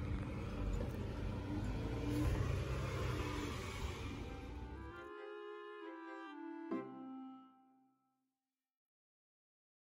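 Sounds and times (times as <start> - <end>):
outdoor street rumble: 0.0 - 6.7.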